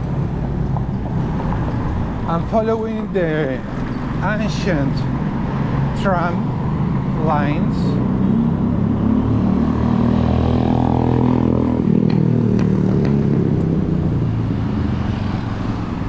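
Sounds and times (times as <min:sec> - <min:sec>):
low rumble of city traffic: 0:00.0 - 0:16.0
motorcycle passing by: 0:06.7 - 0:16.0.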